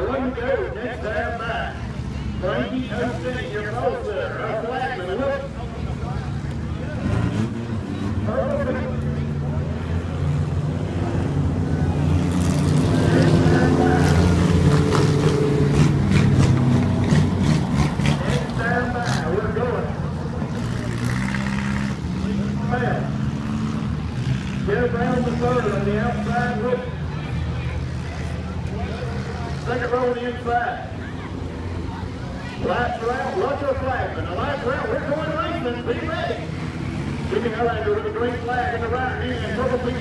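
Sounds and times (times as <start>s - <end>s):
race car engines droning: 0.0s - 40.0s.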